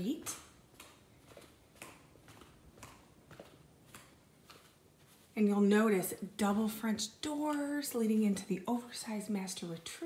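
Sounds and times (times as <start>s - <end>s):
faint footsteps: 0.0s - 10.0s.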